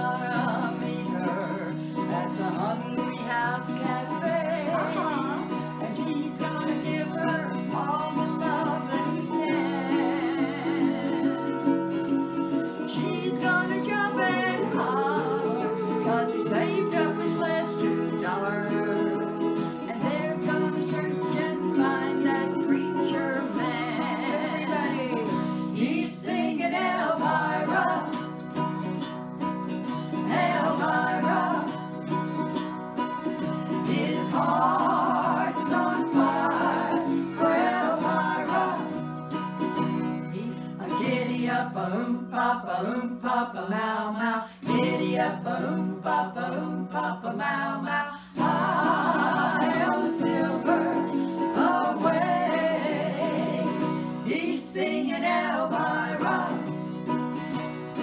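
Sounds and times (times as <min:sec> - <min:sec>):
women singing: 0:00.0 - 0:29.1, 0:30.1 - 0:32.5, 0:33.3 - 0:39.4, 0:40.3 - 0:58.0
acoustic guitar chords: 0:00.0 - 0:58.0.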